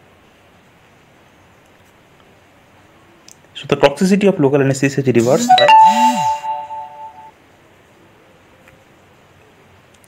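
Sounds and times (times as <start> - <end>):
phone notification chime: 5.4 - 7.3.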